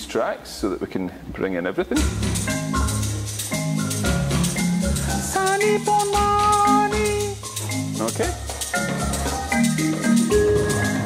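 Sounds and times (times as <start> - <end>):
song playing over speakers: 2.0 - 11.0.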